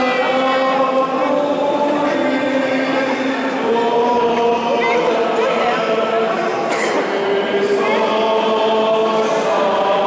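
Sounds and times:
voices singing church chant: 0.0 - 10.0.

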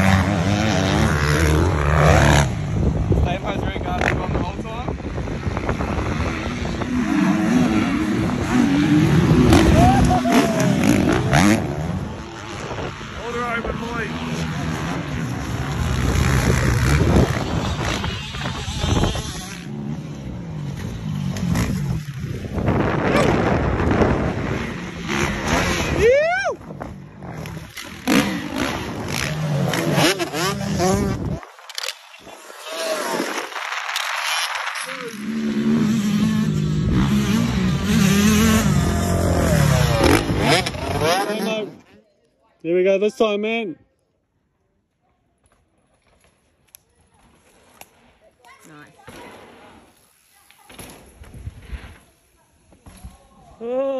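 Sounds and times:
dirt bike engines revving: 0.0 - 42.0
person laughing: 9.6 - 10.8.

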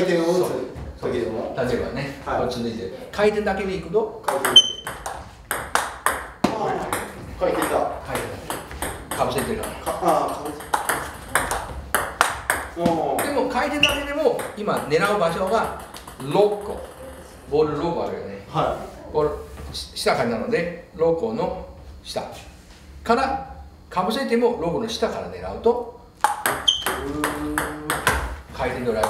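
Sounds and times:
table tennis ball clicks: 26.2 - 27.0
voices talking: 26.7 - 29.0.

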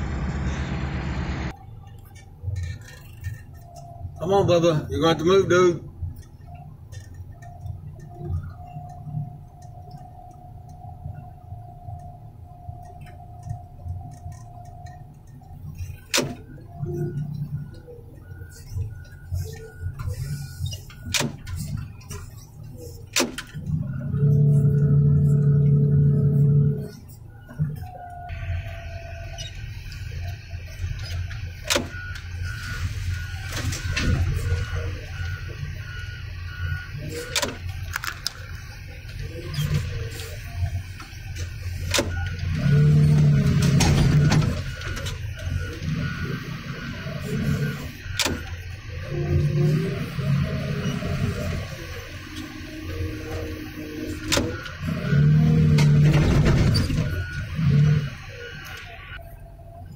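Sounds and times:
heavy machine engine running: 0.0 - 1.8, 7.3 - 59.8.

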